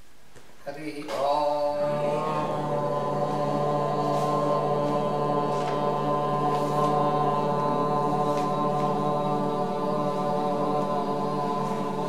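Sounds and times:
voices chanting held note: 0:00.7 - 0:12.0.

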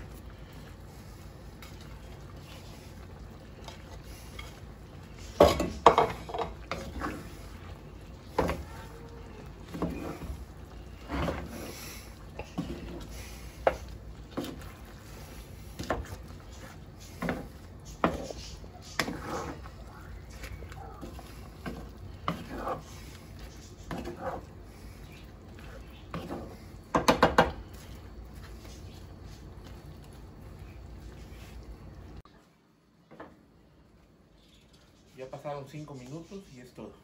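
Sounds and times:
wooden spoon scraping skillet: 0:00.0 - 0:31.8.

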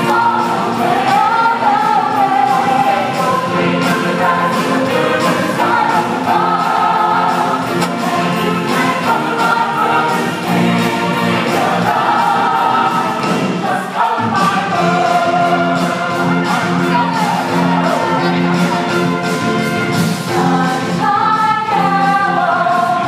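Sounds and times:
accompaniment with steady beat: 0:00.0 - 0:23.0
choir singing in harmony: 0:00.0 - 0:23.0.

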